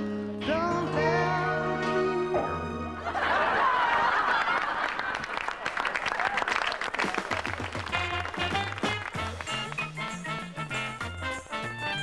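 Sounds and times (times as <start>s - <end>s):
band music: 0.0s - 3.2s, 7.0s - 12.0s
audience applauding: 3.4s - 11.2s.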